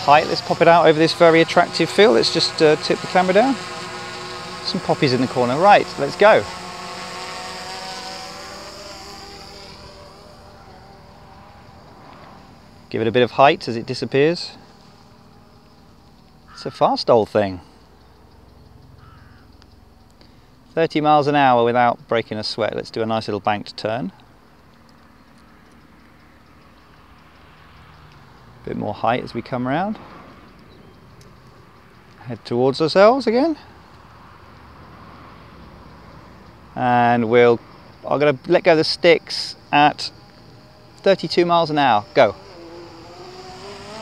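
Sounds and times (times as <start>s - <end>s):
person speaking: 0.0s - 6.8s
low hum: 0.0s - 16.5s
drone propellers buzzing: 0.0s - 18.3s, 33.6s - 44.0s.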